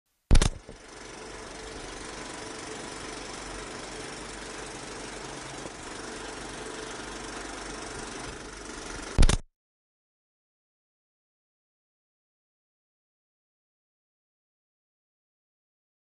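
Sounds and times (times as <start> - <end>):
sharp loud click: 0.3 - 0.8, 9.2 - 9.5
machine rumbling: 0.3 - 9.4.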